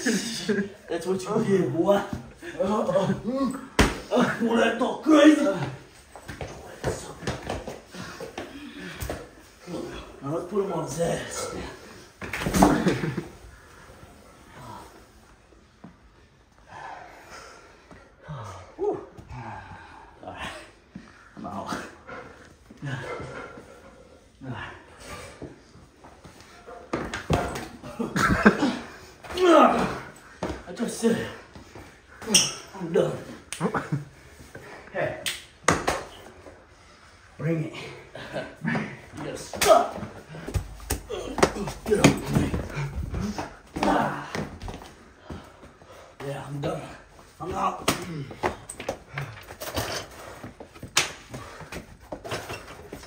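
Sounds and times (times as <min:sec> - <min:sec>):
people grunting and yelling: 0:00.0 - 0:15.1, 0:16.7 - 0:25.6, 0:26.8 - 0:33.5, 0:37.4 - 0:50.6.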